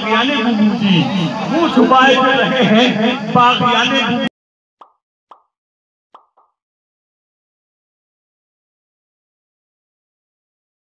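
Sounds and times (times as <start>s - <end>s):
cartoon pop sound effects: 4.8s - 5.5s, 6.2s - 6.6s.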